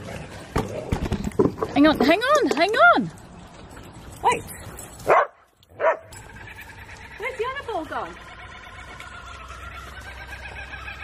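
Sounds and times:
dog barking: 5.1s - 6.1s.

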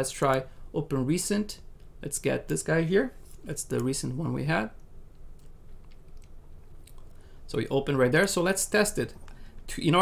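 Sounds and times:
low steady hum: 0.0s - 10.0s
faint clicks: 4.8s - 7.2s.

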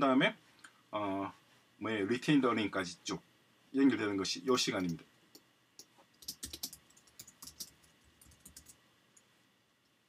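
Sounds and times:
typing on computer keyboard: 6.2s - 8.8s.

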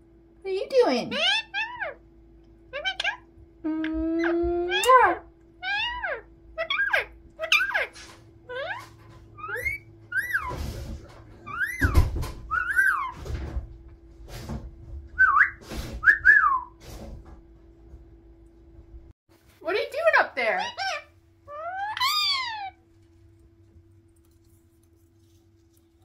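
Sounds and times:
faint steady hum: 0.0s - 26.0s
parakeet whistled chirps: 9.4s - 10.5s, 11.5s - 13.2s.

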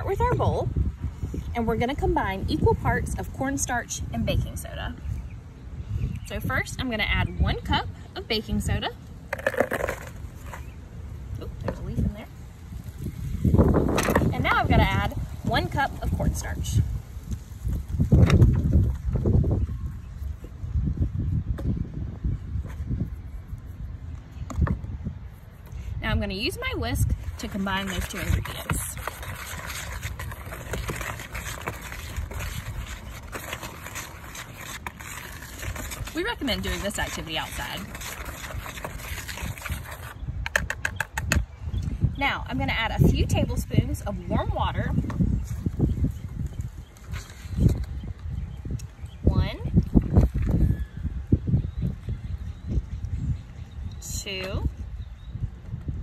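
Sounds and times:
whisk swishing in bowl: 27.4s - 40.1s.

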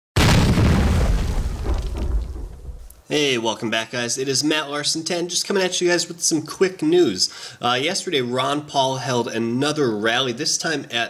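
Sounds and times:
deep cinematic boom: 0.2s - 2.9s.

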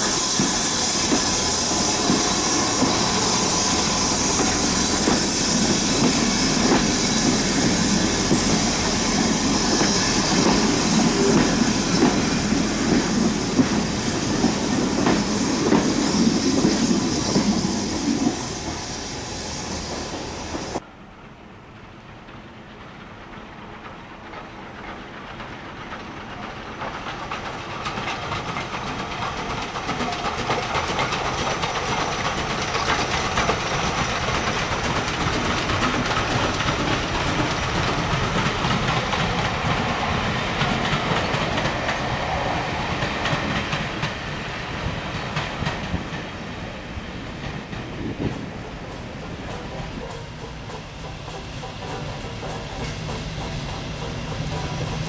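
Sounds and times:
train wheels clattering over rails: 0.0s - 18.9s, 21.7s - 55.0s
steam locomotive running past: 0.0s - 55.0s.

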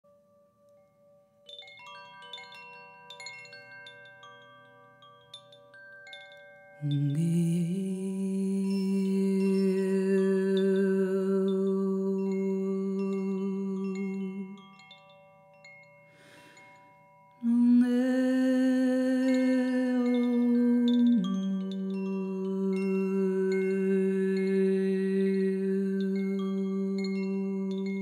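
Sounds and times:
wind chime ringing: 0.1s - 28.0s
person humming: 6.8s - 14.8s, 17.4s - 28.0s.

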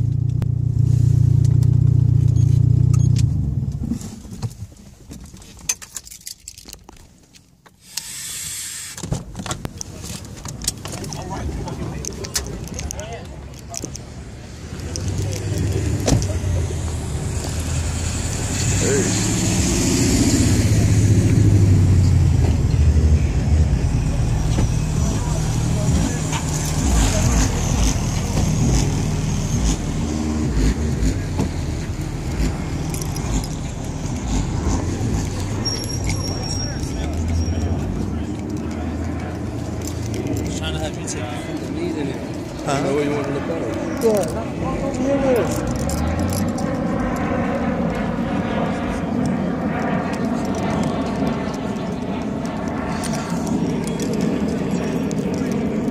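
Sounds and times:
car engine rumbling: 0.0s - 7.4s, 8.4s - 55.9s.

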